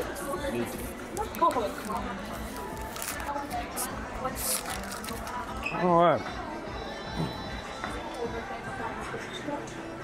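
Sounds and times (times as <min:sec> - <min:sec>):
faint music: 0:00.0 - 0:10.0
paper sleeve crackling: 0:01.3 - 0:05.4.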